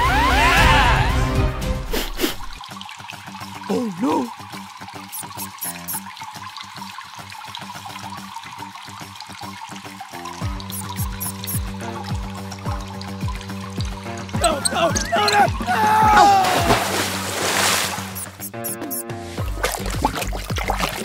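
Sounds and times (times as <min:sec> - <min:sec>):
background music: 0:00.0 - 0:21.0
water dripping and pouring: 0:01.8 - 0:21.0
steady bass beat: 0:10.6 - 0:11.7, 0:18.2 - 0:19.0.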